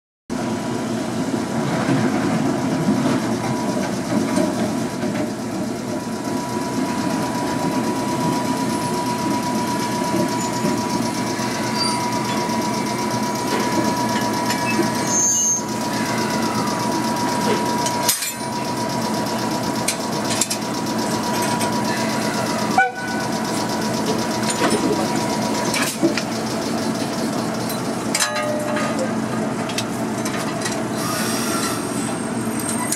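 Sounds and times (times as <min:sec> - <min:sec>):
electric locomotive humming: 0:00.3 - 0:32.9
high-pitched whine: 0:02.6 - 0:29.1.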